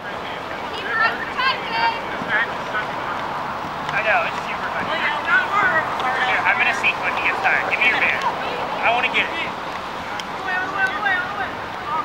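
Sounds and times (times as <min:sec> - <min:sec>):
steady background noise: 0:00.0 - 0:12.0
people shouting: 0:00.6 - 0:12.0.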